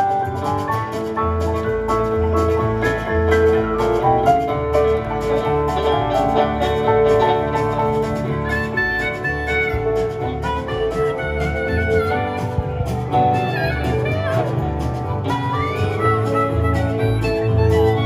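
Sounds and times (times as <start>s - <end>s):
acoustic and electric guitars: 0.0s - 18.0s
bass and drums: 0.0s - 18.0s.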